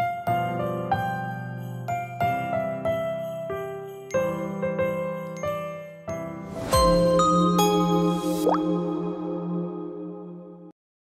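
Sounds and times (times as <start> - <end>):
chiming jingle over chord: 1.0 - 10.7.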